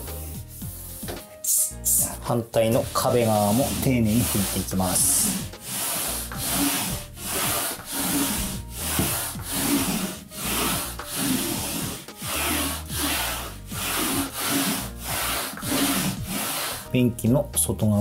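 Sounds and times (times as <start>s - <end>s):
swishing wiping strokes: 2.6s - 16.8s.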